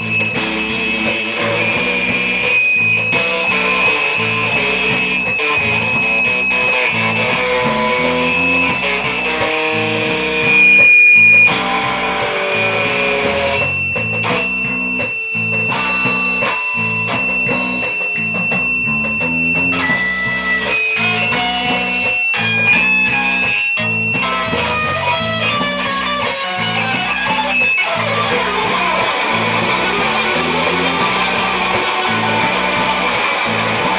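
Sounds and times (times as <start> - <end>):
high electric guitar note: 0.0 - 11.6
live band playing: 0.0 - 33.9.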